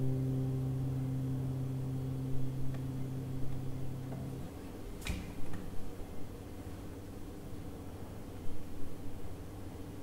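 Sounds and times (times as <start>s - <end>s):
guitar chord ringing: 0.0s - 5.0s.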